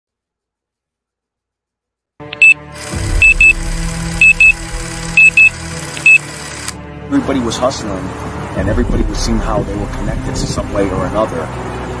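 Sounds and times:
low droning music: 2.2s - 12.0s
short high beeps: 2.4s - 3.6s, 4.2s - 6.3s.

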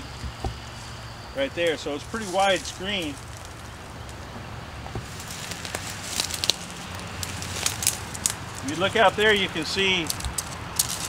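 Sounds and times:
steady low rumble: 0.0s - 11.0s
twigs and leaves crackling: 0.2s - 11.0s
footsteps through dry leaves: 0.6s - 4.2s, 5.0s - 11.0s.

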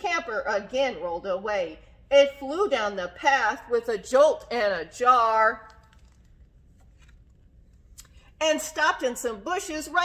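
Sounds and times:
low room hum: 0.0s - 10.0s
page turning rustle: 5.8s - 7.8s.

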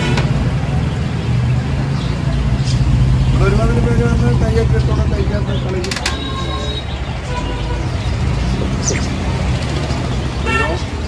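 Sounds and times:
low rumble of road traffic: 0.0s - 11.0s.

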